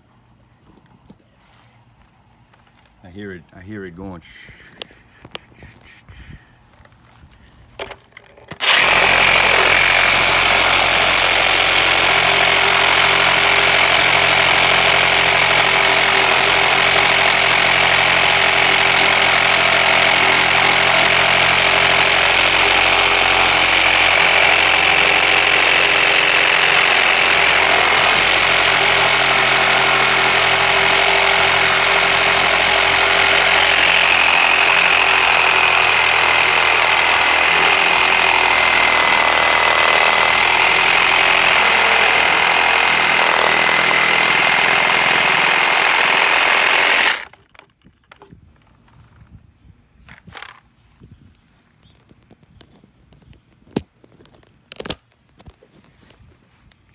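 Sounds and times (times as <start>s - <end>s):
reciprocating saw cutting plastic: 7.8s - 48.3s.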